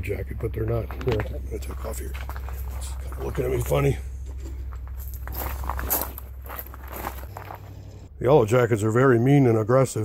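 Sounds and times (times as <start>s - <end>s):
low hum: 0.0s - 10.0s
footsteps on gravel: 0.1s - 8.1s.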